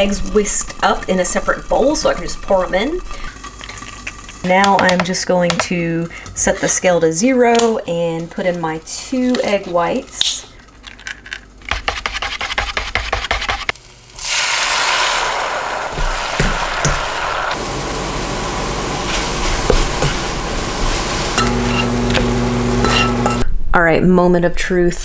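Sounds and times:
wire whisk beating eggs: 0.0s - 10.4s
eggs sizzling in a frying pan: 0.0s - 11.0s, 13.7s - 23.4s
steady low hum: 0.0s - 11.7s, 15.9s - 23.7s.

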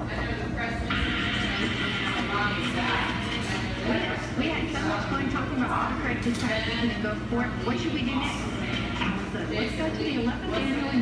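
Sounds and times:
washing machine drum humming: 0.0s - 11.0s
radio broadcast: 0.6s - 6.2s.

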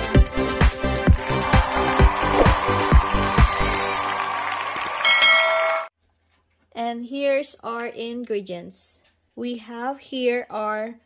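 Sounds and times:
bright bell ding: 5.1s - 5.9s.

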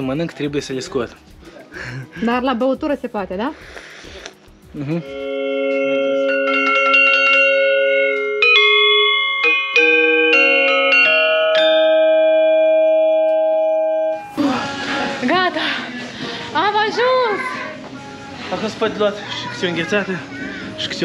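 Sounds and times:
metallophone notes ringing: 4.8s - 14.6s.

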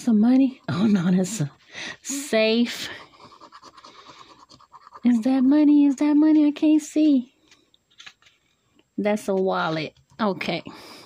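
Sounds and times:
coin scratching lottery ticket: 3.3s - 5.4s.

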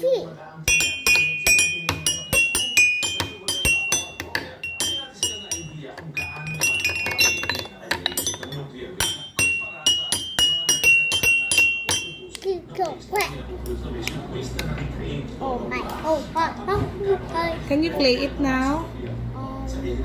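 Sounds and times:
toy xylophone struck rapidly: 0.7s - 12.5s.

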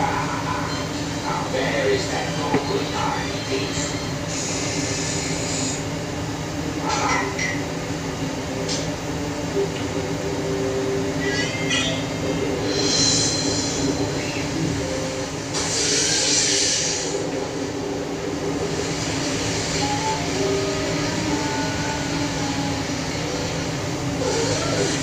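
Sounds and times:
spray hiss: 15.6s - 17.2s.

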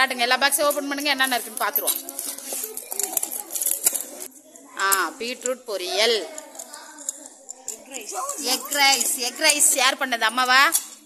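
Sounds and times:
children's voices: 0.2s - 9.9s.

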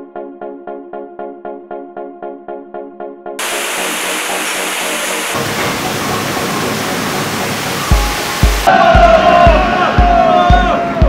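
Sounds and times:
water pouring in a tunnel: 3.4s - 8.7s
synth music beat: 3.4s - 10.7s.

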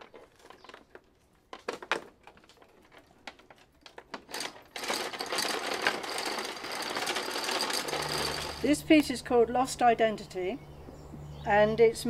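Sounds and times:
fast mechanical rattling: 1.6s - 8.9s.

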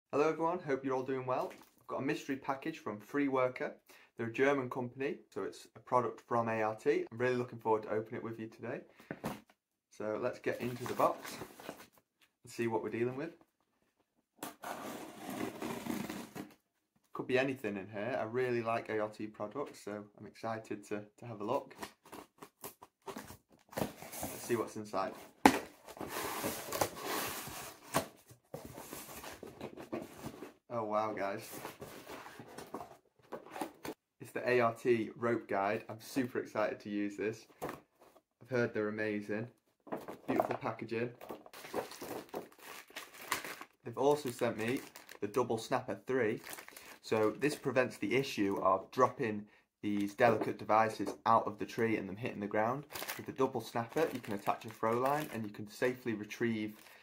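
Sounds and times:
cardboard box rustling and scraping: 14.6s - 16.5s, 25.2s - 30.6s, 31.4s - 34.0s
plastic bag crinkling: 41.2s - 45.3s, 46.4s - 47.0s, 52.9s - 55.3s.

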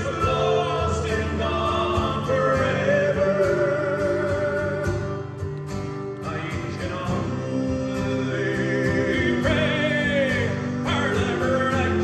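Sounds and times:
man singing: 0.0s - 5.4s, 6.2s - 12.0s
acoustic guitars playing: 0.0s - 12.0s.

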